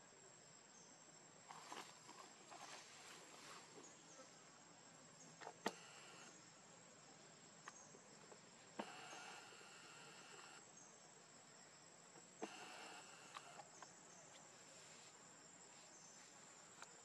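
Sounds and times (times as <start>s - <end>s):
insects buzzing: 0.0s - 17.0s
steady high whine: 12.4s - 13.7s
sharp clicks: 12.4s - 13.9s.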